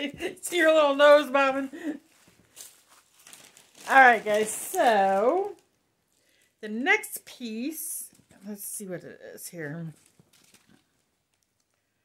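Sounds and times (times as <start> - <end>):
packing paper rustling: 0.1 - 6.5, 9.9 - 11.8.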